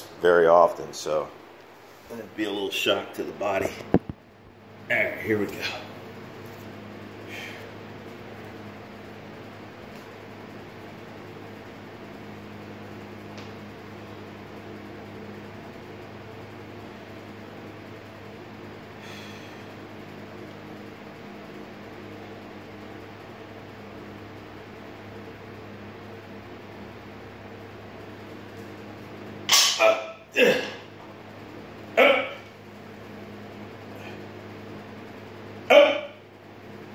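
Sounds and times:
mechanical hum with hiss: 0.0 - 36.9.

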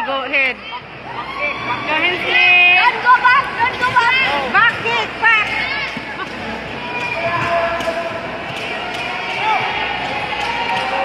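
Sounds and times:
spectators shouting and chattering: 0.0 - 11.0.

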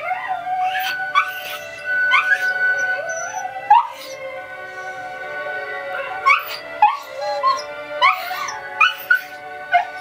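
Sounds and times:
dog howling: 0.0 - 10.0
opera music: 0.0 - 10.0.

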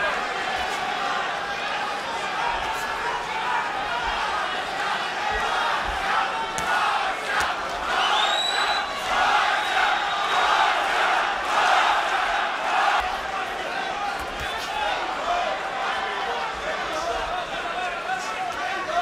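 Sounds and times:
crowd shouting: 0.0 - 19.0
high whistle-like tone: 8.0 - 9.0.

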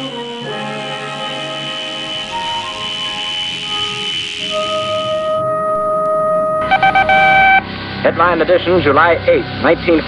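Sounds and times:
buzzy pulsing beeping tone: 1.6 - 5.4, 6.6 - 7.7
steady pure electronic tone: 6.6 - 7.7.

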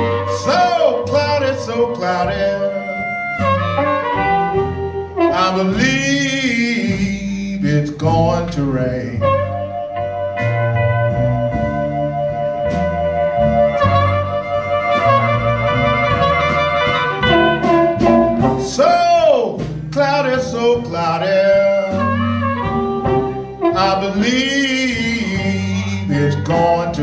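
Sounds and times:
amplified harmonica note bending: 0.0 - 5.8, 9.2 - 18.6
electric blues band: 0.0 - 27.0.

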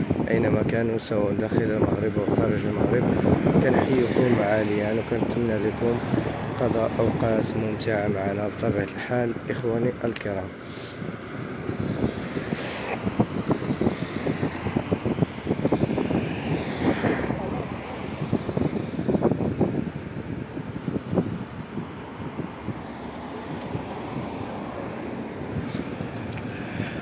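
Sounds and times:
road and traffic rumble: 0.0 - 27.0
wind buffeting microphone: 0.0 - 27.0.

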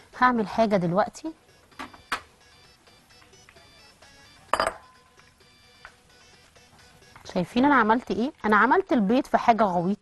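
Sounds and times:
quiet background music: 0.0 - 10.0
glass bowl clinking: 4.5 - 5.0.

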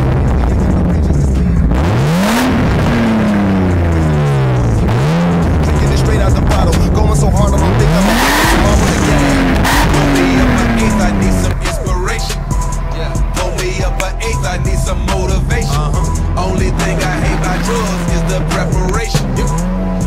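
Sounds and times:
car engine revving: 0.0 - 20.0.

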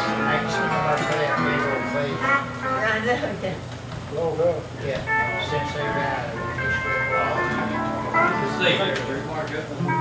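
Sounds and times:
country band guitars playing: 0.0 - 10.0.

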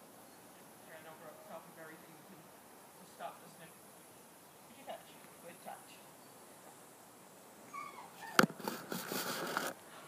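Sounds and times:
dog whining: 7.7 - 8.5
rustling: 7.7 - 10.0.

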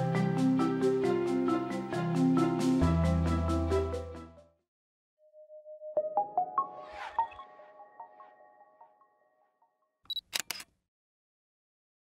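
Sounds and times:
sharp clicks: 10.1 - 10.7.

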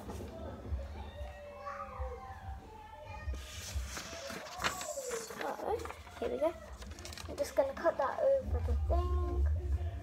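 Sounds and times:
paper rustling: 3.3 - 8.0.

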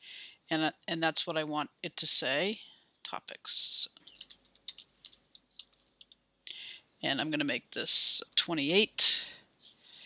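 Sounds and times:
keyboard key clicks: 4.1 - 6.2.

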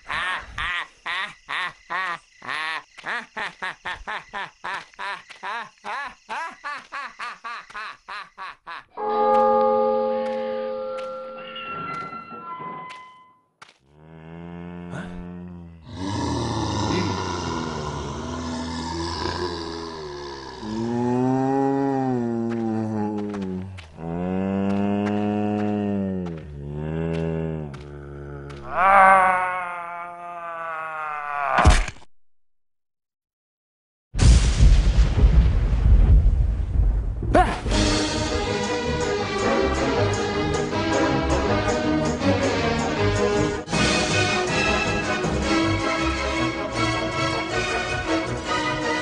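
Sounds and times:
musical notes stepping downward: 9.0 - 12.3.

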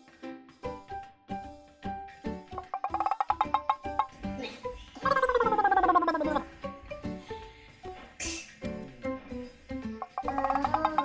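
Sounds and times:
plucked background music: 0.0 - 11.0.

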